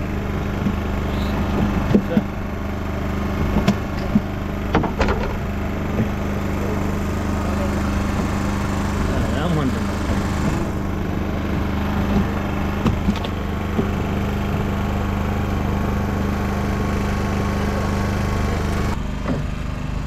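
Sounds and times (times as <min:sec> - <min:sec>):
small engine humming: 0:00.0 - 0:20.0.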